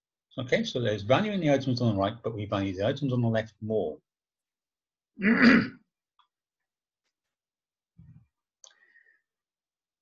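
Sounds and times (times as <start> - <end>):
man clearing his throat: 5.2 - 5.8.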